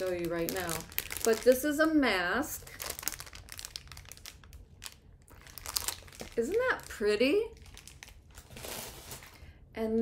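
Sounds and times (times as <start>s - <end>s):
plastic bag crinkling: 0.0s - 9.5s.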